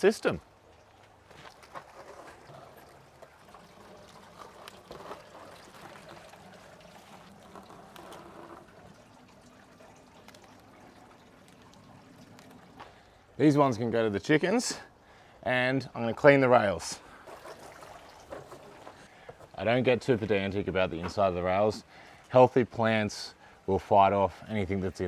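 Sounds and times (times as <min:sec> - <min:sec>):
water trickling: 0:00.0 - 0:23.7
plants rustling and clicking: 0:00.9 - 0:13.2.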